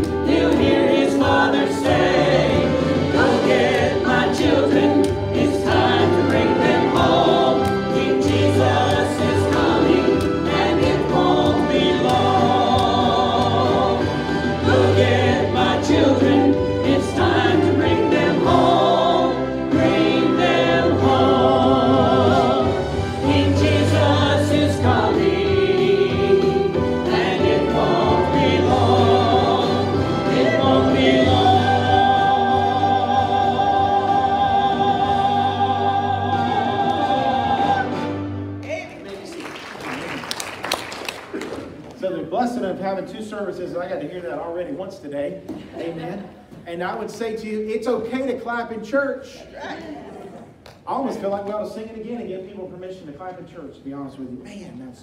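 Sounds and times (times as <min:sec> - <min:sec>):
voices singing gospel: 0:00.0 - 0:38.4
instrumental accompaniment: 0:00.0 - 0:38.7.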